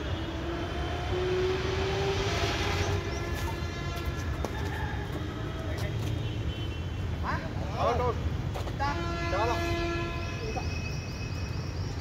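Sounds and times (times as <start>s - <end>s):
low traffic rumble: 0.0s - 12.0s
vehicle horn: 3.0s - 4.4s, 8.9s - 11.0s.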